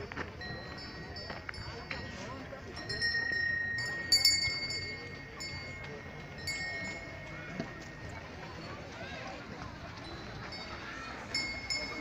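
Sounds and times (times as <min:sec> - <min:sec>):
low crowd murmur: 0:00.0 - 0:12.0
small metal bells ringing: 0:00.3 - 0:12.0.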